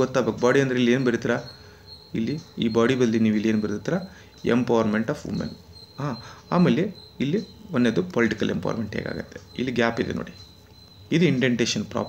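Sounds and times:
man speaking: 0:00.0 - 0:10.5, 0:11.1 - 0:12.0
faint high-pitched whine: 0:00.0 - 0:12.0.

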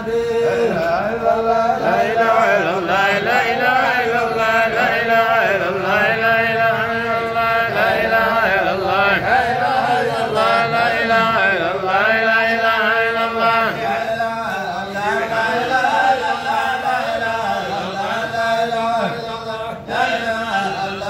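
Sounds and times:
man chanting: 0:00.0 - 0:21.0.

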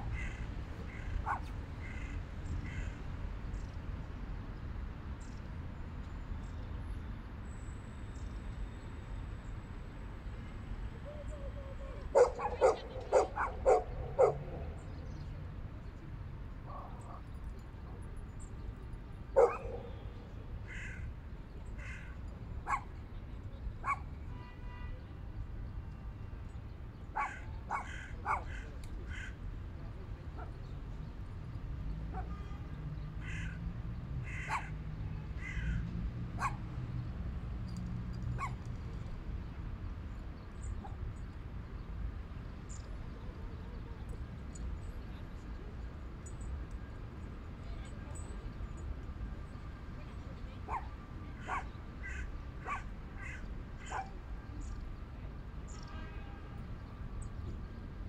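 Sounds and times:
sharp animal calls: 0:12.1 - 0:14.6.

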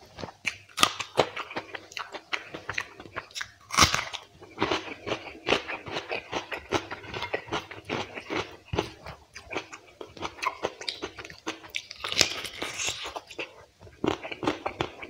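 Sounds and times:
chewing and crunching food: 0:00.0 - 0:15.0.

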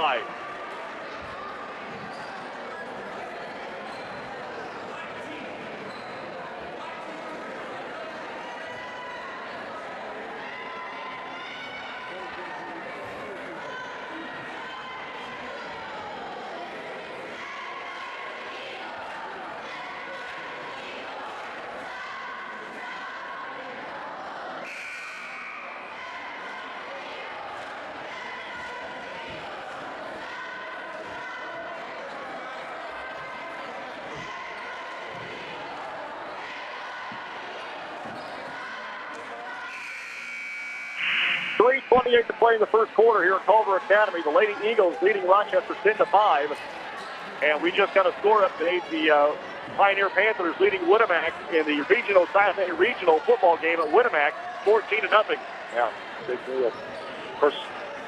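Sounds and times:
crowd murmuring: 0:00.0 - 0:00.5, 0:40.8 - 0:58.0.

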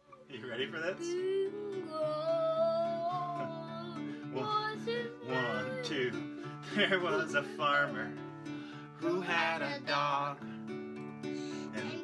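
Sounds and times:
acoustic guitar strumming chords: 0:00.0 - 0:12.0
child singing high note: 0:01.1 - 0:06.1.

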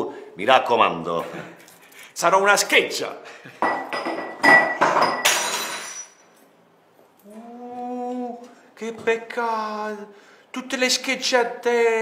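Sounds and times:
glass shattering: 0:03.7 - 0:06.4
ringing shards: 0:03.7 - 0:06.4.

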